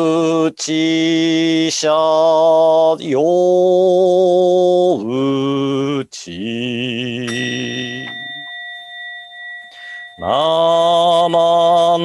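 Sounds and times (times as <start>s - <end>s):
chanting voice: 0.0s - 12.0s
bowl-shaped temple bell ringing: 7.3s - 12.0s.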